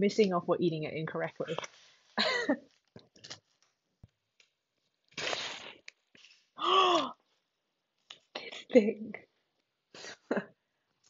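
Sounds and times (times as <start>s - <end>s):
woman laughing: 2.2s - 2.6s
plastic package crinkling: 2.7s - 3.8s.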